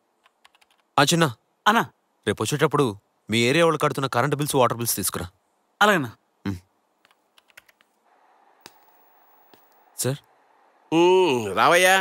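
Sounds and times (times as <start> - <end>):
keyboard typing clicks: 0.2 - 0.9, 7.0 - 7.9.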